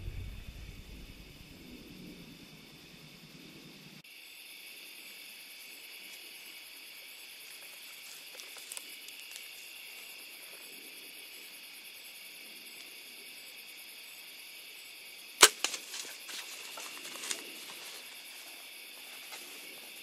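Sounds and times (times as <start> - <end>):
smaller crack: 15.4 - 18.0.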